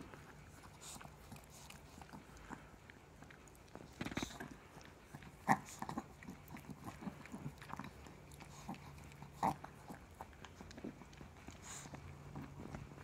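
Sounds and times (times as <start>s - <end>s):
dog licking: 0.0s - 13.0s.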